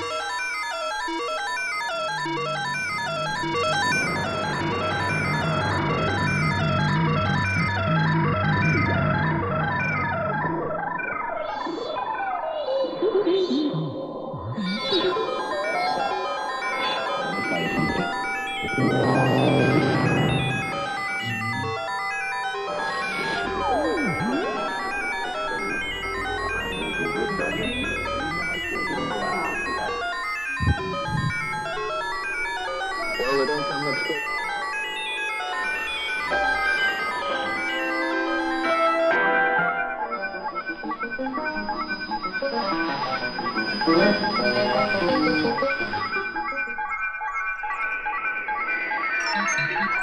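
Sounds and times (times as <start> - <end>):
electronic beeping tones and whistles: 14.5 - 39.2, 39.8 - 50.0
pitch sweeping glides: 15.5 - 32.0.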